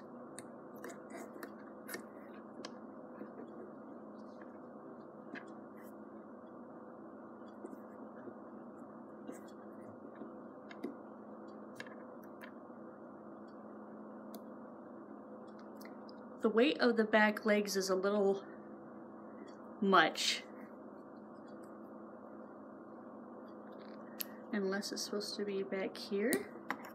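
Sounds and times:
low room hum: 0.0 - 26.9.

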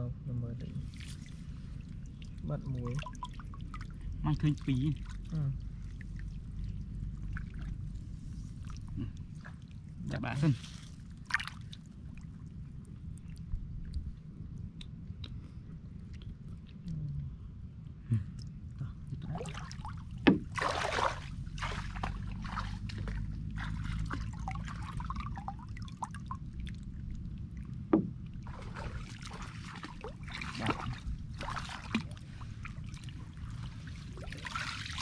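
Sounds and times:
water sloshing and splashing: 0.6 - 15.0, 19.0 - 35.0.

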